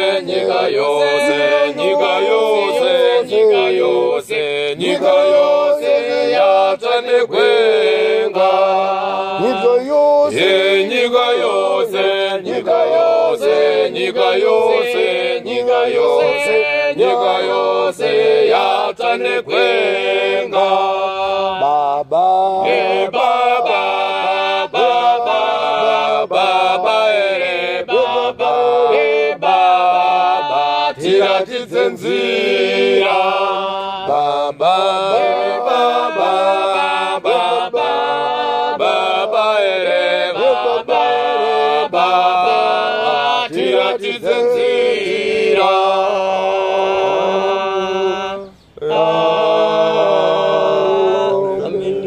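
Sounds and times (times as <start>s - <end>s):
choir singing a hymn: 0.0s - 52.0s.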